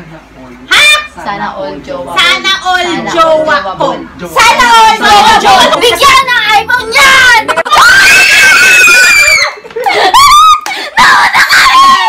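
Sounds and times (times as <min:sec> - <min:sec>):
loud shouting voices: 0:04.4 - 0:12.0
young women screaming: 0:07.7 - 0:12.0.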